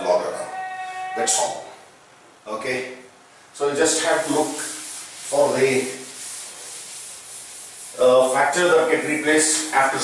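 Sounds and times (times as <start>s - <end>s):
duster scrubbing a chalk blackboard: 3.6s - 10.0s.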